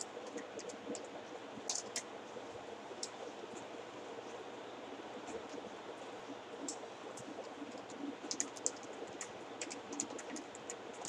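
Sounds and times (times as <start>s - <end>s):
quiet room hiss: 0.0s - 11.0s.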